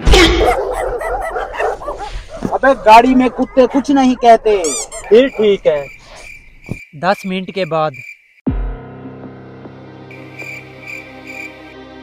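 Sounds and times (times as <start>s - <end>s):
dogs barking and yapping: 0.1s - 6.6s.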